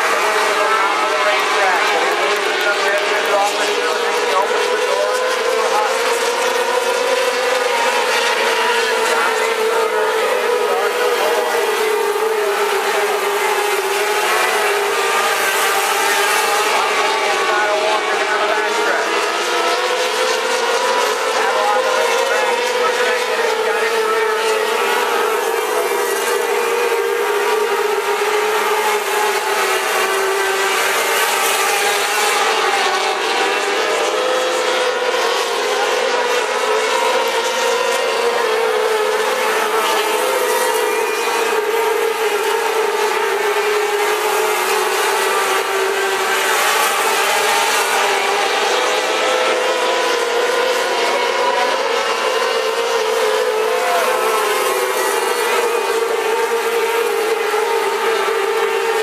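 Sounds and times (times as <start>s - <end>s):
racing car engines at high revs: 0.0s - 59.0s.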